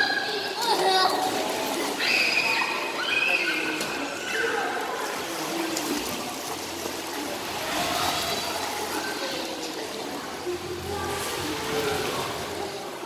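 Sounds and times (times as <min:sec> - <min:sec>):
children calling out: 0:00.0 - 0:05.0
swimmers splashing in a pool: 0:00.0 - 0:13.0.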